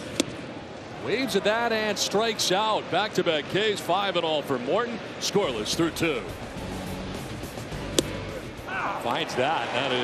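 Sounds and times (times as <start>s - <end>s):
ballpark crowd noise: 0.0s - 10.0s
baseball smacking into mitt: 7.8s - 8.2s.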